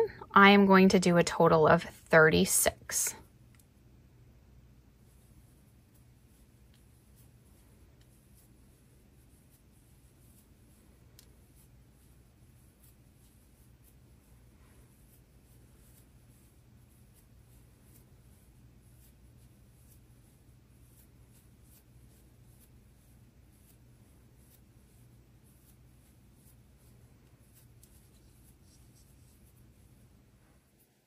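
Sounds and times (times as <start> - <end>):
low room hum: 0.0 - 31.0.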